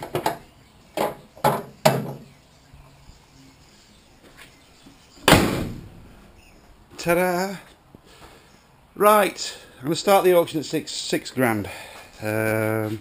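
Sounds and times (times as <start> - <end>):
sharp knocks and clatters: 1.0 - 2.3
car bonnet slammed shut: 5.2 - 6.0.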